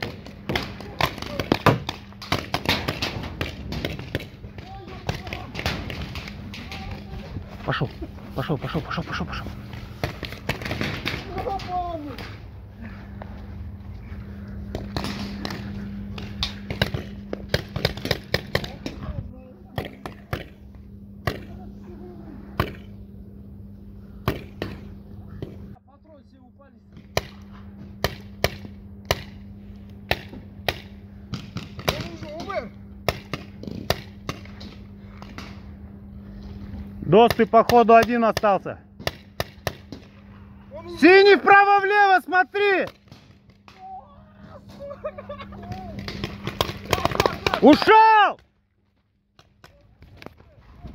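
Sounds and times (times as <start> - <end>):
paintball markers firing: 0.0 - 7.1, 14.8 - 19.0, 30.1 - 35.6, 37.2 - 40.2, 45.6 - 47.9.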